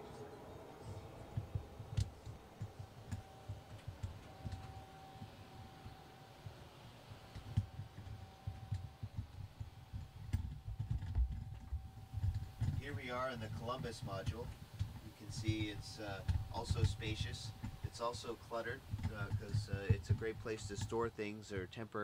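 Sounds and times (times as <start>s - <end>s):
faint equipment hum: 0.0s - 22.0s.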